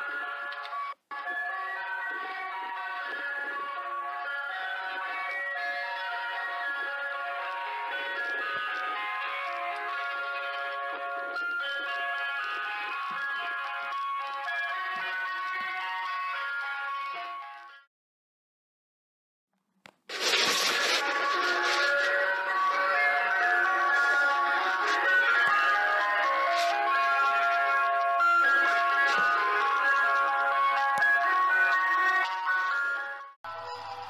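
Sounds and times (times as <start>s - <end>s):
ice cream van chimes: 0.0s - 17.9s, 21.9s - 34.0s.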